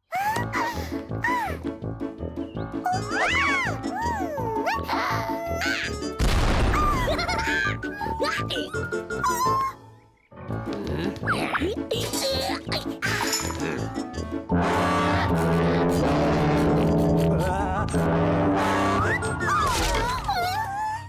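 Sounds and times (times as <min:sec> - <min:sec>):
bouncy cartoon music: 0:00.0 - 0:21.0
squeaky vocal chirps: 0:02.8 - 0:06.2, 0:07.5 - 0:10.1.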